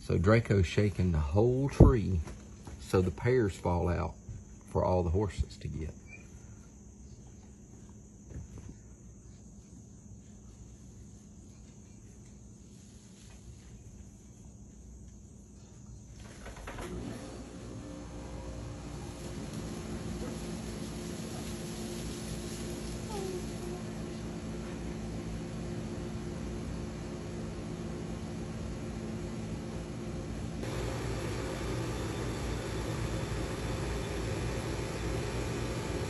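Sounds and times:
machine hum with hiss: 1.1s - 36.0s.

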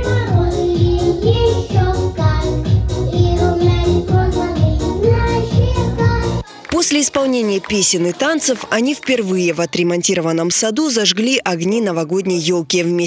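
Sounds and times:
children singing into microphones: 0.0s - 10.0s.

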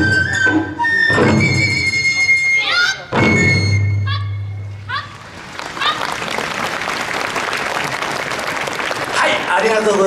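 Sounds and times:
audience applauding: 4.9s - 10.0s.

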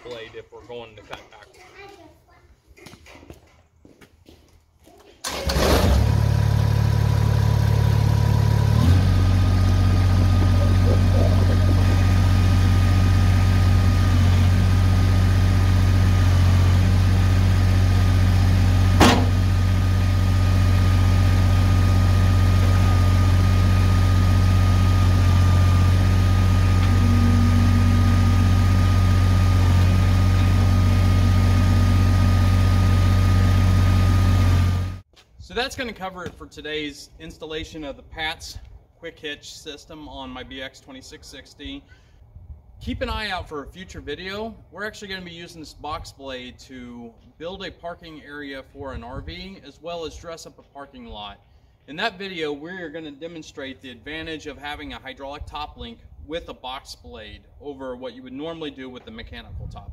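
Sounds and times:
tractor diesel engine running: 5.3s - 35.0s
hydraulic high whine: 5.4s - 35.0s.

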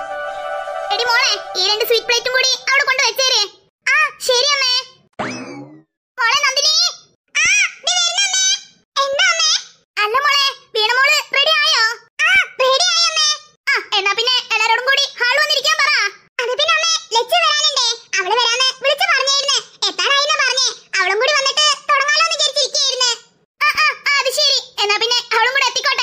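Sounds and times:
high-pitched cartoon voice talking: 0.9s - 5.0s, 6.2s - 26.0s.

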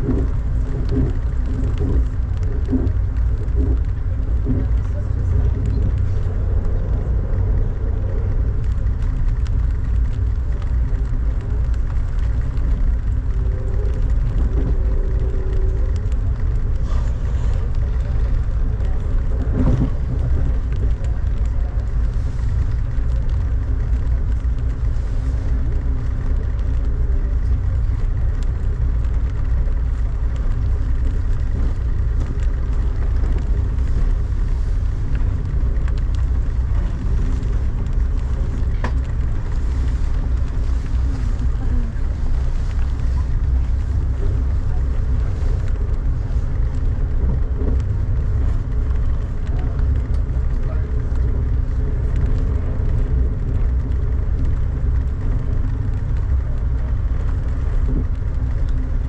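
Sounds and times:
train rumbling from inside: 0.0s - 59.0s.

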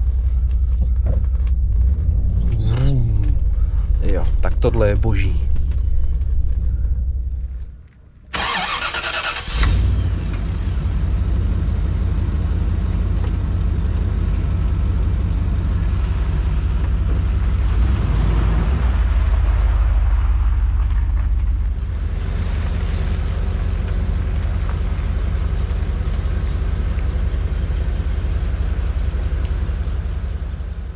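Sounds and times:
car engine idling: 0.0s - 18.0s, 18.8s - 30.9s.

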